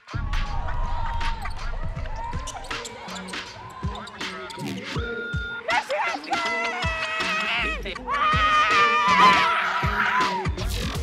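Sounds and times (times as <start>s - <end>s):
sneakers squeaking on floor: 2.2s - 7.3s.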